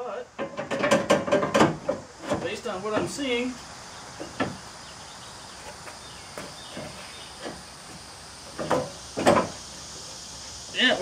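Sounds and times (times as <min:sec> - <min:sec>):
faint high hiss: 0:00.0 - 0:11.0
knocks and clicks in engine bay: 0:00.4 - 0:03.2.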